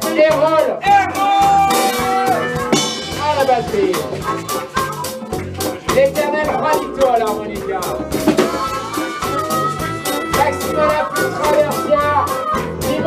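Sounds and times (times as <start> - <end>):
drum kit with cymbals: 0.0 - 13.0
electric bass: 0.0 - 13.0
lead melody bending in pitch: 8.3 - 12.9.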